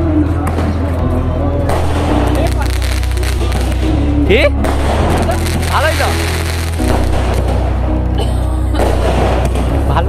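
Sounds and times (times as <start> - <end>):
voices: 0.0 - 9.0
music with heavy bass: 0.0 - 10.0
firework cracks: 1.7 - 4.0, 4.6 - 7.8, 8.8 - 9.7.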